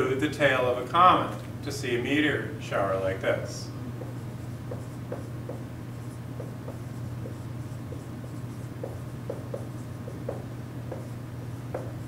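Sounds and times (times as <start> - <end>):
steady low hum: 0.0 - 12.0
marker squeaking on whiteboard: 4.0 - 12.0.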